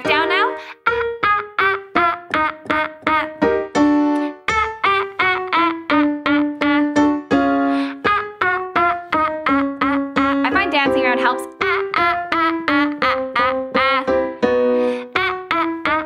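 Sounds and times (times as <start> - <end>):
woman singing staccato notes: 0.0 - 0.7, 1.6 - 3.5, 8.6 - 14.1
piano accompaniment: 0.0 - 16.0.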